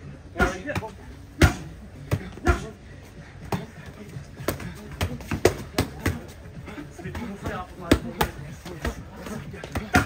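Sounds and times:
boxing gloves hitting mitts: 0.4 - 2.7, 3.4 - 10.0.

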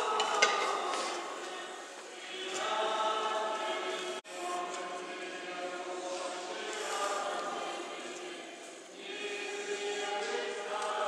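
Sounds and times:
church choir singing held chords: 0.0 - 11.0.

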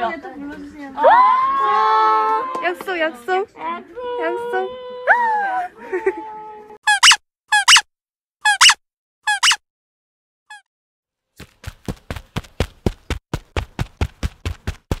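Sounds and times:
high-pitched squeaks: 6.8 - 7.8, 8.4 - 9.6.

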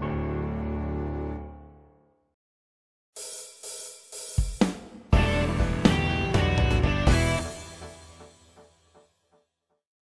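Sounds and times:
background music: 0.0 - 2.2, 4.6 - 9.5
hi-hat and cymbal strokes: 3.2 - 5.5
bass and drums: 3.2 - 7.9.

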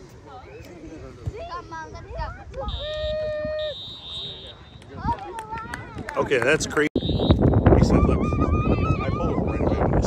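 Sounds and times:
referee's whistle blasts: 2.7 - 4.8, 7.0 - 7.8.

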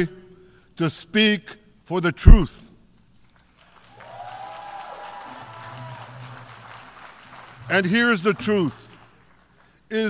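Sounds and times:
audience applause: 3.6 - 9.6
distant cheering voice: 4.0 - 6.5.

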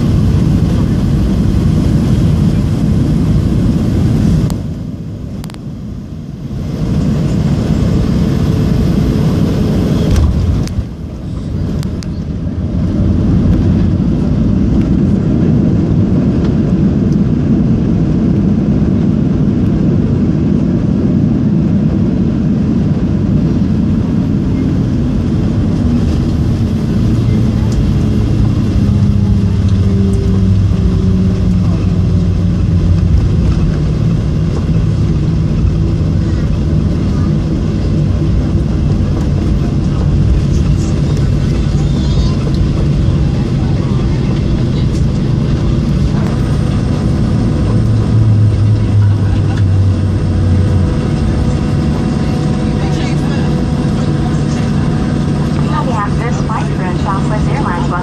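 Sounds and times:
jet engines roaring in reverse thrust: 0.0 - 58.0
rush of runway: 0.0 - 58.0
engine tones sliding down in pitch: 26.0 - 34.8.

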